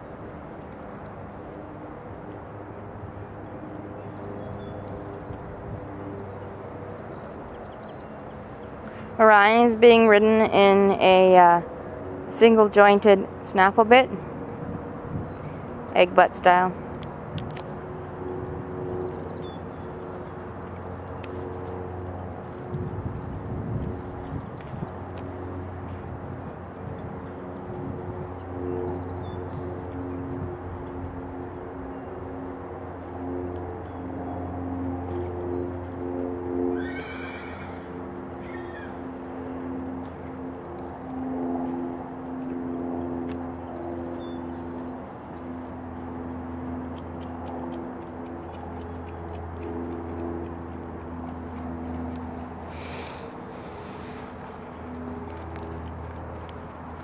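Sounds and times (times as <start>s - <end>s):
steady low hum: 0.0s - 36.8s, 37.4s - 57.0s
horse whinnying: 36.8s - 38.9s.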